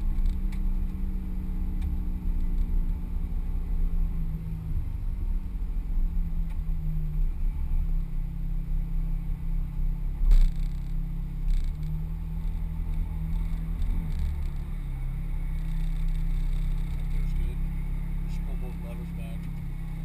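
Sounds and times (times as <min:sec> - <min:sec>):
car engine running at low revs: 0:00.0 - 0:20.0.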